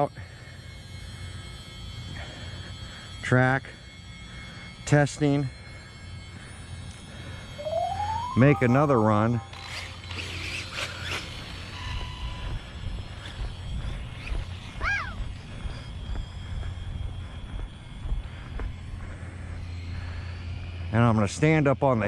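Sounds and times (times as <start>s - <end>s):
faint electric motor whine: 0.0s - 22.0s
rising and falling chirp: 7.5s - 11.2s.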